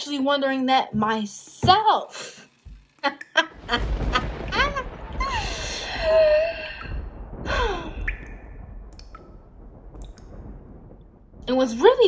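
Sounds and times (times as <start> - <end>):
woman laughing: 3.0 - 6.4
woman sighing: 5.2 - 8.1.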